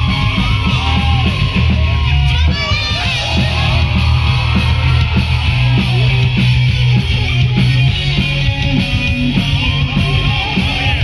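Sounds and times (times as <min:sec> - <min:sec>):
voices yelling: 0:00.0 - 0:08.3, 0:09.0 - 0:11.0
live rock band: 0:00.0 - 0:11.0.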